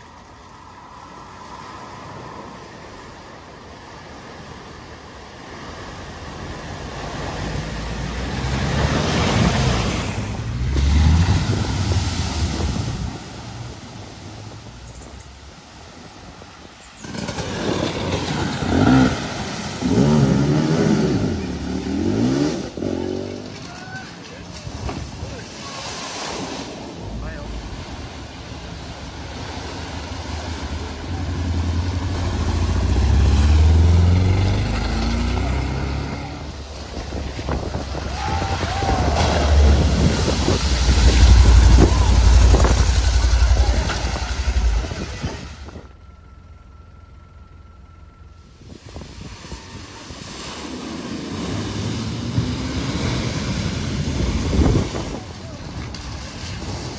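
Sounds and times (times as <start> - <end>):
water rushing and splashing: 0.0 - 46.1, 48.6 - 56.9
car engines running: 0.0 - 56.9.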